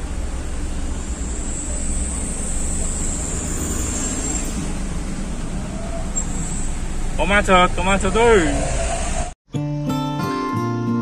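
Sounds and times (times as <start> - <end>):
road traffic rumble: 0.0 - 9.4.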